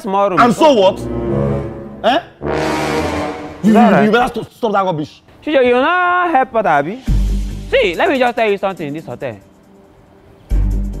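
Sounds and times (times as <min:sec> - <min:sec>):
low brass-like horn tone: 0:00.4 - 0:04.2.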